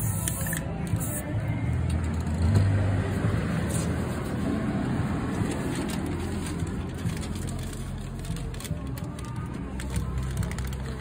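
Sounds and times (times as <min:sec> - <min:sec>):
spray paint can hissing: 0:00.0 - 0:01.4
background music: 0:00.0 - 0:11.0.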